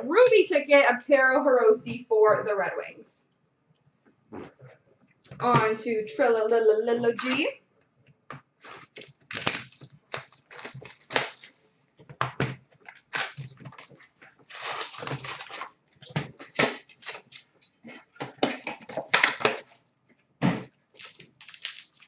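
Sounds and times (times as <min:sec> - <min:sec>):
cardboard and wrappers tearing: 0:08.6 - 0:11.6, 0:12.9 - 0:17.5, 0:20.9 - 0:22.0.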